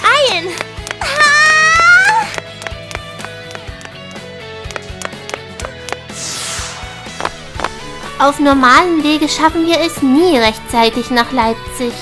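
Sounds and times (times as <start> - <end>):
cartoon music with light beat: 0.0 - 12.0.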